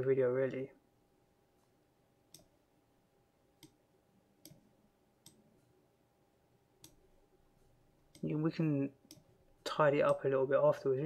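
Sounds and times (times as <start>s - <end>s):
faint steady hum: 0.0s - 11.0s
computer mouse clicks: 1.6s - 2.6s, 3.6s - 3.8s, 4.4s - 5.7s, 6.8s - 7.0s.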